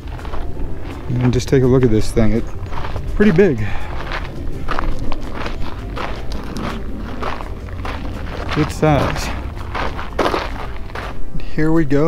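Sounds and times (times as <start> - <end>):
footsteps crunching on gravel: 0.0 - 11.7.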